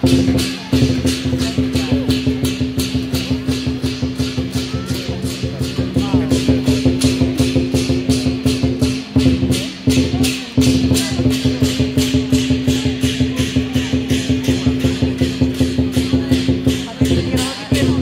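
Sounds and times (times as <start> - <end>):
dragon dance percussion music: 0.0 - 18.0.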